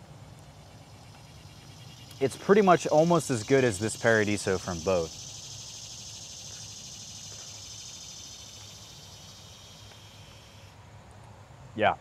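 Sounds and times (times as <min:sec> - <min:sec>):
insects chirring: 0:00.0 - 0:11.4.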